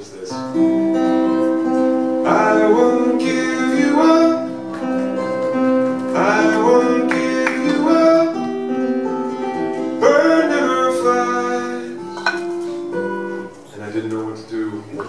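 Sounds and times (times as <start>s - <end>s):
acoustic guitar strums: 0.3s - 15.0s
man singing: 2.2s - 4.6s, 6.1s - 8.7s, 10.0s - 12.2s.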